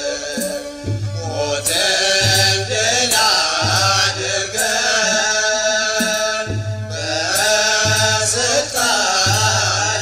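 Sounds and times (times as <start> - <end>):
voices singing liturgical chant: 0.0 - 10.0
low drum beat: 0.4 - 10.0.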